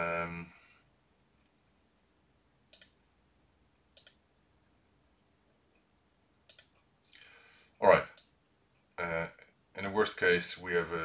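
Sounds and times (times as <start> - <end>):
computer mouse clicks: 2.6 - 3.0, 3.9 - 4.2, 6.4 - 7.2.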